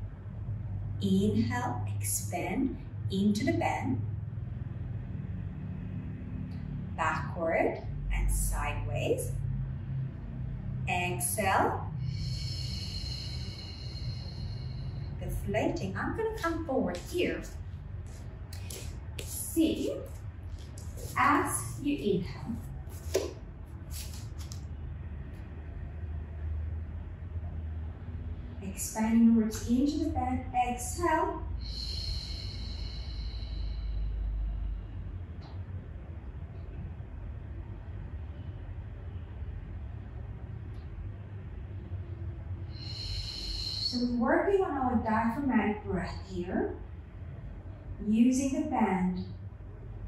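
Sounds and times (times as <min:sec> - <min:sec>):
low background rumble: 0:00.0 - 0:50.0
steady low hum: 0:00.0 - 0:50.0.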